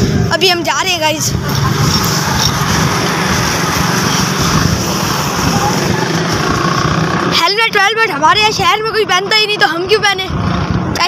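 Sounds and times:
motorcycle engines rumbling: 0.0 - 11.0
street traffic: 0.0 - 11.0.

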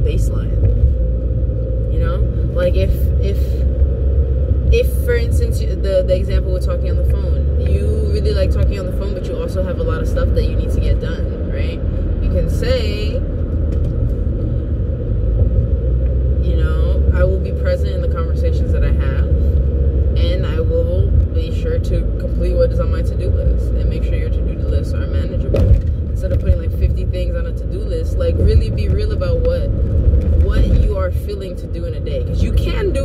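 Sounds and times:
woman talking: 0.0 - 0.6, 1.9 - 3.6, 4.7 - 13.2, 16.4 - 19.5, 20.2 - 29.7, 30.4 - 33.0
car cabin road rumble: 0.0 - 33.0.

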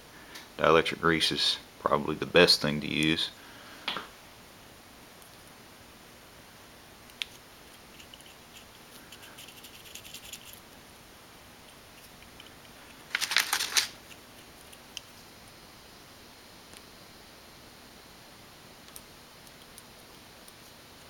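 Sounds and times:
clicks and rattles of small parts: 12.0 - 14.2
plastic parts clicking: 12.3 - 14.0.

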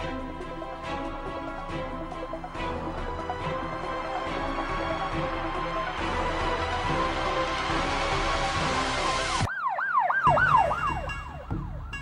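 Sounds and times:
dance music: 0.0 - 9.5
siren sound effect falling sweeps: 9.4 - 12.0.

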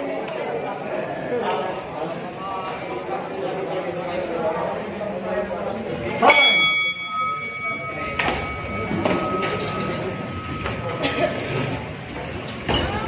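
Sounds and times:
boxing ring bell ringing: 6.2 - 12.3.

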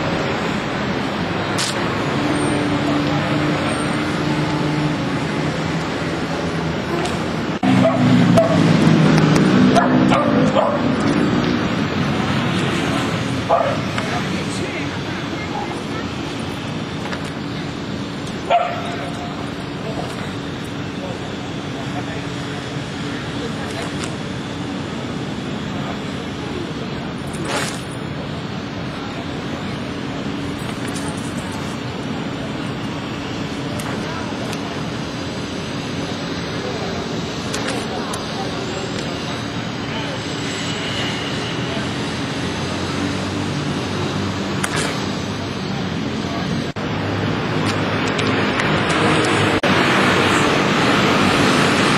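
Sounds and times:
indistinct voices: 0.0 - 51.9
traffic: 0.0 - 51.9.

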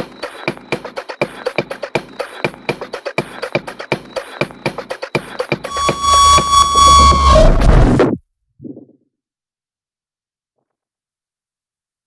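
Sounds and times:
techno music: 5.7 - 8.0.

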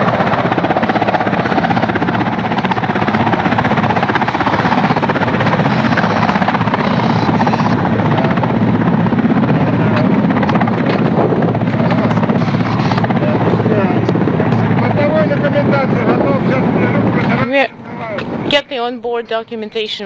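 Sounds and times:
helicopter rotors and engines: 0.0 - 20.0
faint voices: 4.4 - 20.0.

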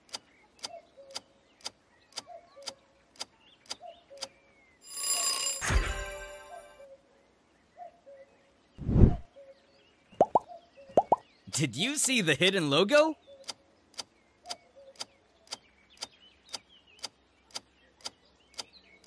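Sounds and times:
bright chime and burst: 4.8 - 6.8
low thumping whoosh: 8.8 - 9.2.

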